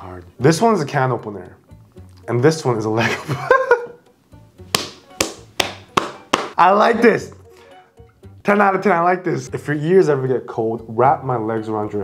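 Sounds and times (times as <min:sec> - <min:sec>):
person laughing: 0:03.0 - 0:04.0
hand slapping thigh: 0:04.6 - 0:06.6.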